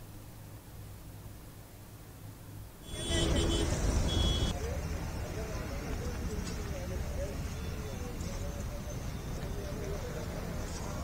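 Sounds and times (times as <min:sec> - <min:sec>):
traffic: 0:00.0 - 0:11.0
people's voices: 0:02.9 - 0:11.0.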